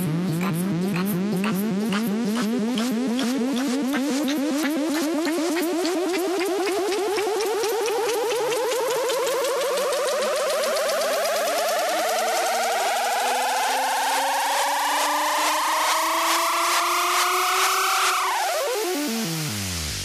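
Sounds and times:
bass: 0.0s - 20.0s
rapid ticking hi-hats: 0.0s - 20.0s
synth riser climbing in pitch: 0.0s - 20.0s.

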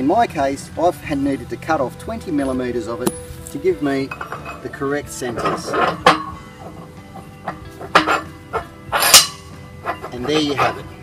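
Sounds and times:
soft background music: 0.0s - 11.0s
metal pins knocking and clinking: 3.0s - 10.9s.

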